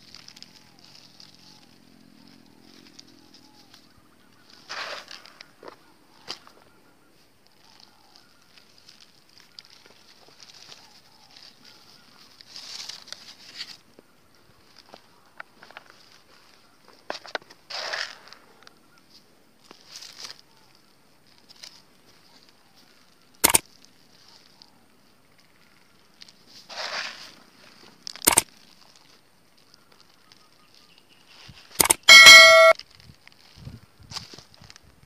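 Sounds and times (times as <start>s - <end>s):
rustling of soil and plants: 0.0s - 32.1s, 32.7s - 35.0s
sharp clicks: 23.4s - 23.7s, 28.1s - 28.5s, 31.8s - 32.8s
loud ringing tone: 31.8s - 32.8s.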